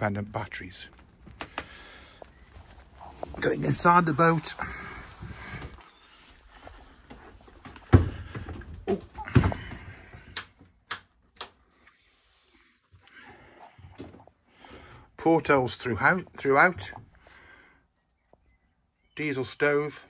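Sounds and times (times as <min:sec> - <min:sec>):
sharp clicks: 0:10.4 - 0:11.6.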